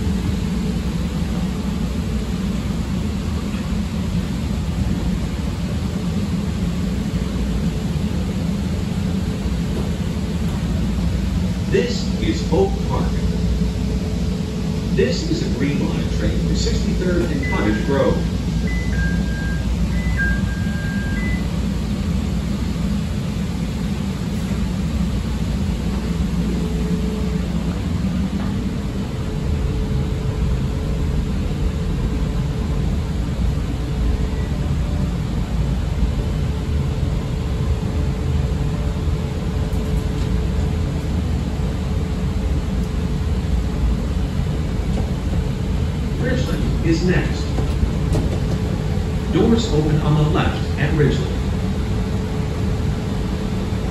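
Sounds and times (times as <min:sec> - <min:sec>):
train motor hum: 0:00.0 - 0:53.9
train rumbling on rails: 0:00.0 - 0:53.9
two-tone door chime: 0:18.6 - 0:21.5.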